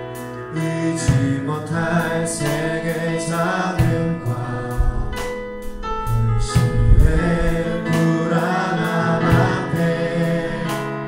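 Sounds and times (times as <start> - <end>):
backing accompaniment: 0.0 - 11.0
group singing gospel song: 0.5 - 11.0.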